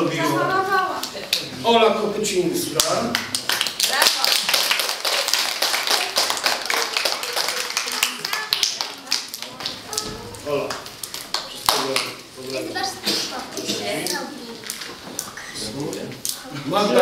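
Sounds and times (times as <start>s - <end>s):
people clapping: 2.8s - 12.6s.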